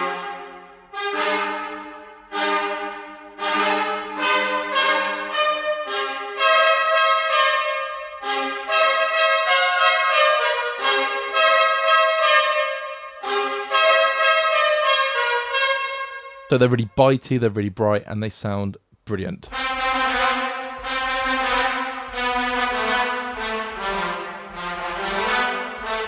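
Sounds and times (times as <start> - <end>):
trumpets playing short notes: 0.0 - 16.8, 19.5 - 26.0.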